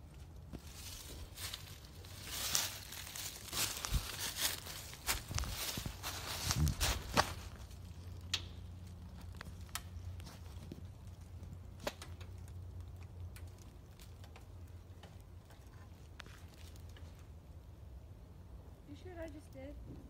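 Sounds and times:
footsteps crunching through dry leaves: 0:00.5 - 0:10.8.

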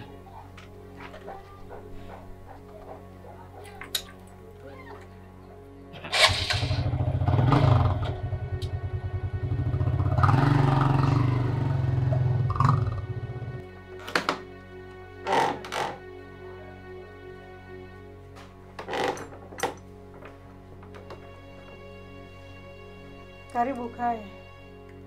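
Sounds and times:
background music: 0:00.0 - 0:25.0
motorcycle engine running: 0:06.2 - 0:13.5.

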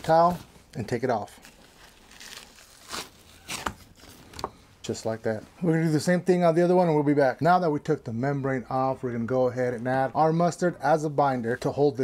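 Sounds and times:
membrane tearing and crinkling: 0:00.0 - 0:04.5.

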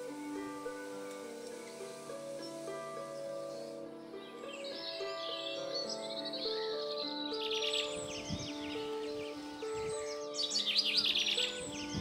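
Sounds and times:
slow background music: 0:00.0 - 0:12.0
songbird chirping: 0:00.0 - 0:12.0.

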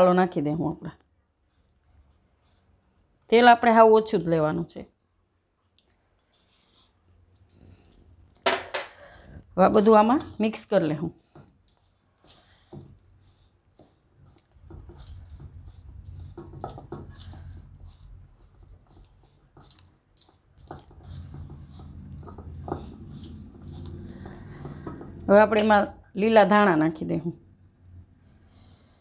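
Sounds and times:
spatula tapping and scraping metal bowl: 0:09.6 - 0:25.9.

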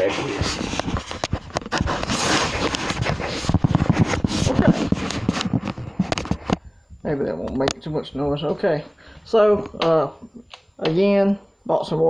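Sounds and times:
handling noise on phone microphone: 0:00.0 - 0:08.8.

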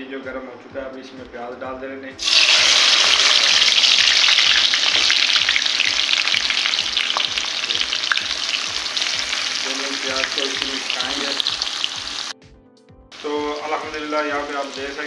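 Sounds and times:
onions sizzling in hot oil: 0:02.2 - 0:12.3, 0:13.1 - 0:15.0.

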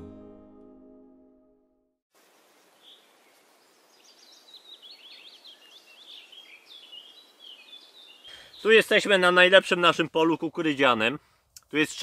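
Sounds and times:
songbird chirping: 0:02.2 - 0:10.5.

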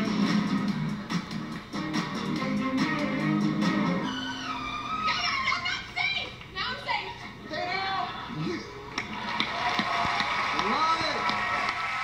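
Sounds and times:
guitar-backed music: 0:00.0 - 0:05.1.

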